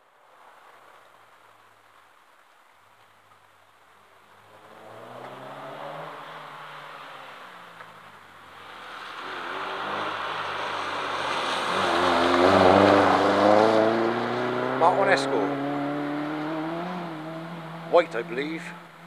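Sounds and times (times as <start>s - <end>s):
rally car engine passing at speed: 4.5s - 19.0s.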